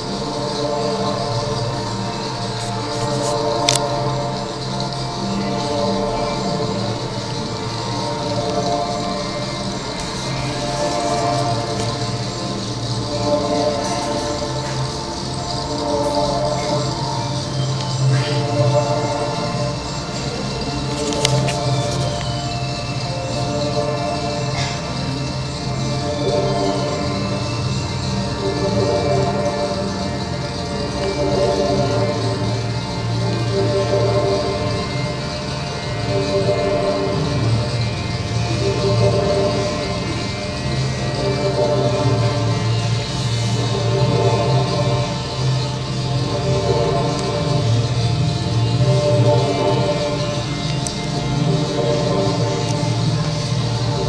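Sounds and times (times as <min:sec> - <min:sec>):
ambient droning music: 0:00.0 - 0:54.0.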